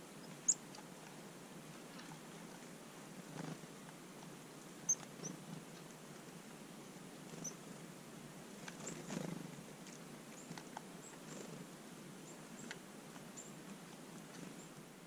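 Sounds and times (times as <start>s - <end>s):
low steady hiss: 0.0s - 15.0s
songbird chirps: 0.0s - 15.0s.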